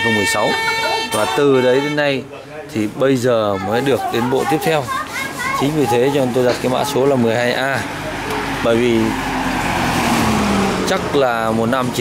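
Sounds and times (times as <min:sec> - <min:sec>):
tyre road noise: 0:00.0 - 0:12.0.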